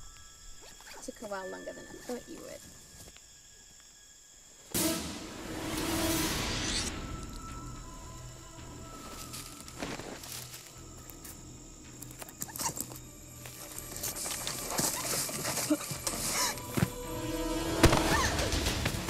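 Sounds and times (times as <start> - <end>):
suspenseful horror music drone: 4.1 - 19.0.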